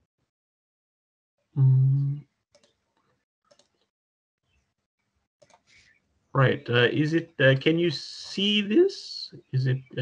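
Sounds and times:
person humming mm: 0:01.6 - 0:02.2.

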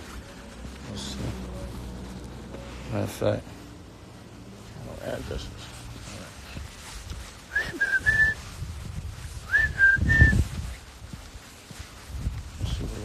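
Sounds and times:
microphone handling rumble: 0:05.9 - 0:13.0
person whistling: 0:07.5 - 0:08.5, 0:09.4 - 0:10.5.

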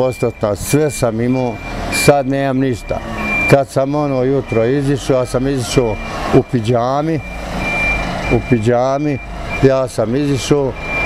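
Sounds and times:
man's voice: 0:00.0 - 0:07.3, 0:08.3 - 0:10.8
high-pitched beep: 0:00.0 - 0:09.8, 0:10.4 - 0:11.0.

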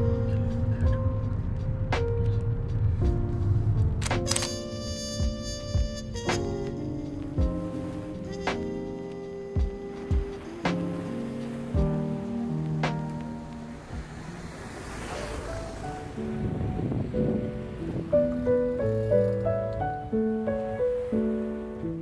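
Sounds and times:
gentle instrumental music: 0:00.0 - 0:22.0.

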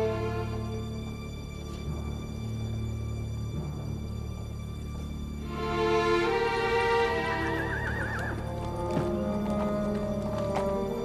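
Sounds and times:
horse whinnying: 0:07.3 - 0:08.6.

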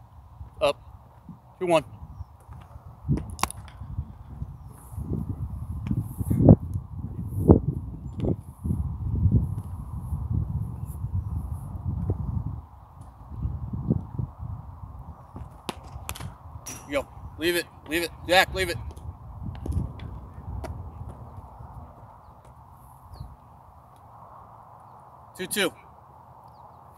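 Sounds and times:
wind buffeting microphone: 0:00.0 - 0:24.6.

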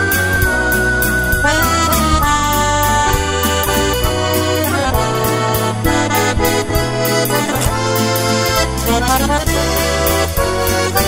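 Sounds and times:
piano accordion playing a waltz: 0:00.0 - 0:11.0.

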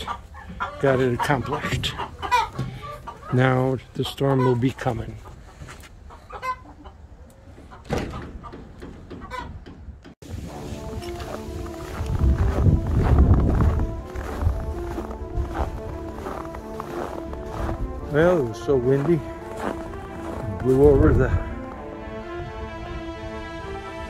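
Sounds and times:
background music with held notes: 0:00.0 - 0:05.0, 0:10.2 - 0:24.0
chickens clucking: 0:00.0 - 0:09.9
wind rumble on microphone: 0:09.6 - 0:18.0.

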